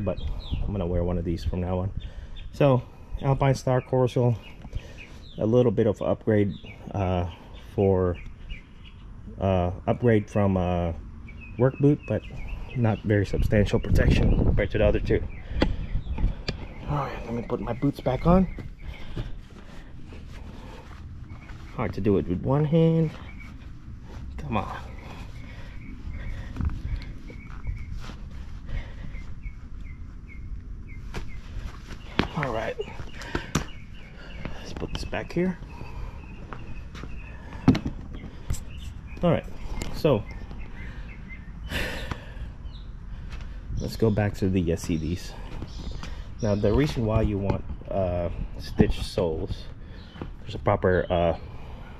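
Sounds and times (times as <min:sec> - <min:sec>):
boot rustling: 0:16.6 - 0:22.4, 0:23.0 - 0:30.1, 0:30.8 - 0:38.7.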